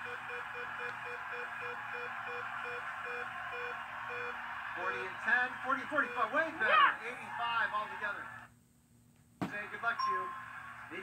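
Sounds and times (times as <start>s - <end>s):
television game show voices: 0.0s - 8.6s, 9.4s - 11.0s.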